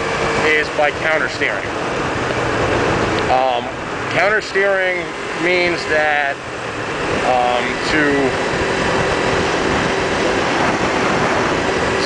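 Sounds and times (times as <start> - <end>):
motorcycle engine cruising: 0.0 - 12.0
wind and road noise: 0.0 - 12.0.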